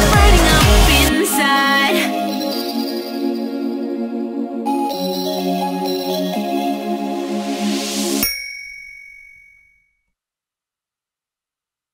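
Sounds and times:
pop song band: 0:00.0 - 0:02.2
high bell-like ding: 0:08.2 - 0:10.0.

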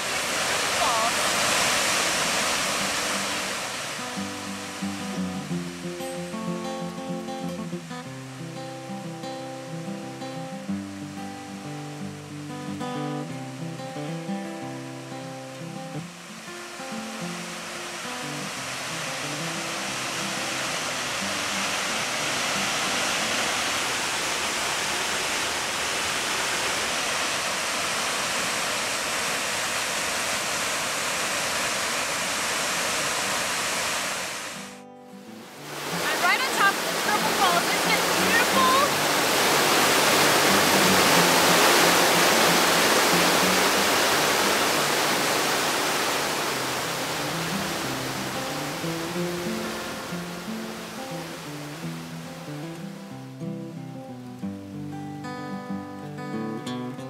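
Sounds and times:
waterfall rushing: 0:00.0 - 0:56.3
creek rapids rushing: 0:00.0 - 0:56.7
faint guitar tune: 0:02.2 - 0:24.0, 0:34.6 - 0:45.4, 0:46.5 - 0:57.0.

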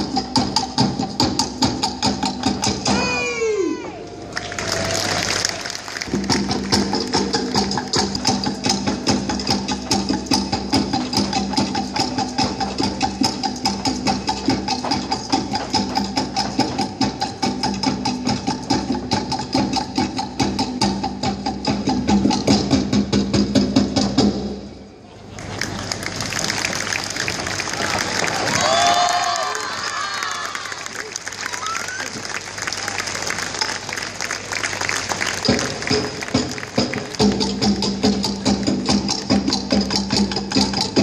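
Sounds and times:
rapid wooden drum beats: 0:00.0 - 0:03.4, 0:05.1 - 0:24.6, 0:32.7 - 0:41.0.

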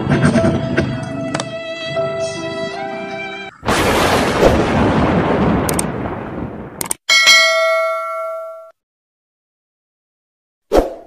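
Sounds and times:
click: 0:06.8 - 0:07.0
bright bell ding: 0:07.1 - 0:08.8.

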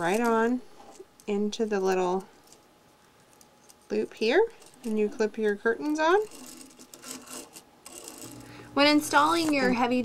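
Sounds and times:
plastic curtain carrier scraping and clicking: 0:06.1 - 0:08.5.

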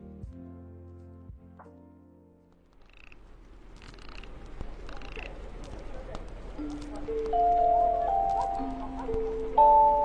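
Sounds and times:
music notes: 0:06.6 - 0:10.0.

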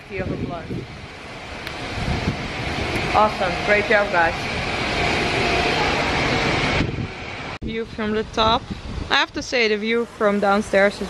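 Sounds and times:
wind buffeting microphone: 0:00.0 - 0:11.0
fountain water running: 0:07.8 - 0:11.0.

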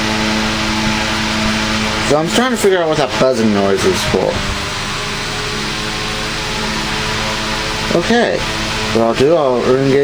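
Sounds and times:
electric fan whooshing: 0:00.0 - 0:10.0
fan motor hum and buzz: 0:00.0 - 0:10.0.

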